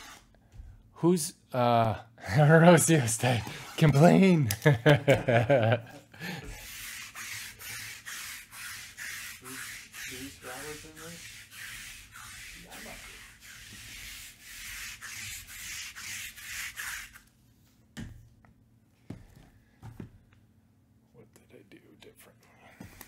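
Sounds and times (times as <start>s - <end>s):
hand rubbing a surface: 2.8s - 4.3s, 6.4s - 17.9s
person laughing: 4.0s - 6.5s.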